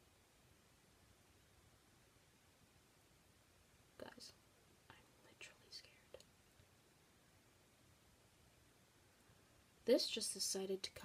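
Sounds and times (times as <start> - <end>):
faint whispering: 4.0 - 6.3.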